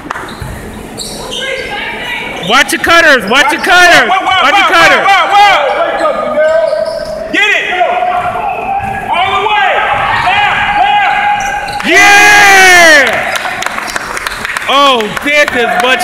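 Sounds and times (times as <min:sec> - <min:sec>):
sneakers squeaking on hardwood: 0:00.0 - 0:02.5, 0:05.6 - 0:07.3, 0:08.1 - 0:11.9.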